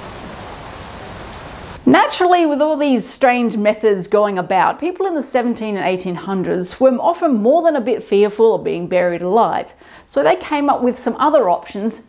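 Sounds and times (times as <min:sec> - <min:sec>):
woman speaking: 0:01.8 - 0:12.0.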